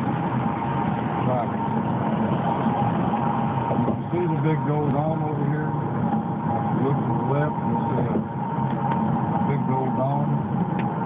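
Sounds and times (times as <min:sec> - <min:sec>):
road and wind noise inside car: 0:00.0 - 0:11.0.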